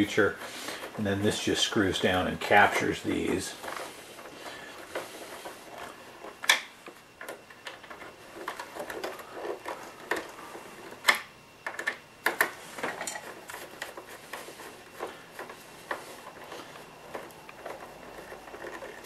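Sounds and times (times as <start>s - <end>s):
light plastic clicks and scrapes: 0.1s - 19.0s.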